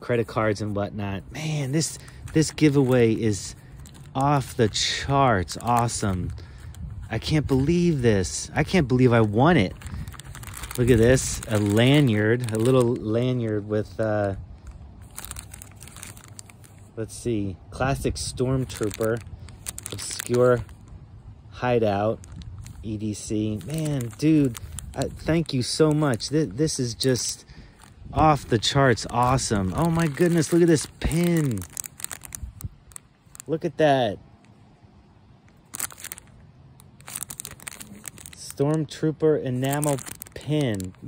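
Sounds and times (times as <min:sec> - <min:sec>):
plastic bag crinkling: 0:00.3 - 0:17.2, 0:17.8 - 0:21.0, 0:21.6 - 0:33.6, 0:35.3 - 0:41.0.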